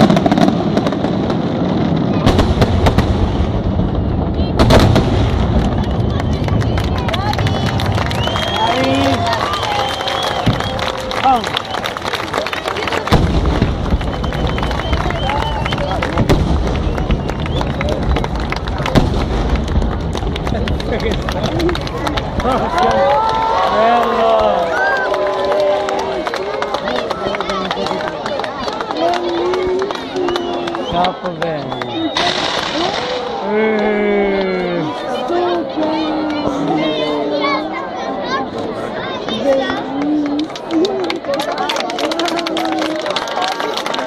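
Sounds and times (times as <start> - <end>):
fireworks bangs and crackles: 0.0 - 37.6.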